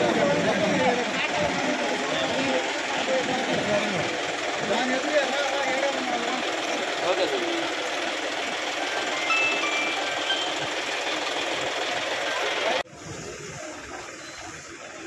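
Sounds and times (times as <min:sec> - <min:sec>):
engine running: 0:00.0 - 0:12.8
crowd voices: 0:00.0 - 0:15.0.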